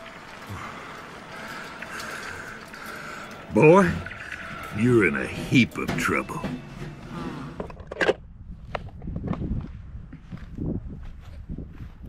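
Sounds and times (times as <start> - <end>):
wind rumble on microphone: 7.6 - 12.0
footsteps on dry grass: 8.5 - 12.0.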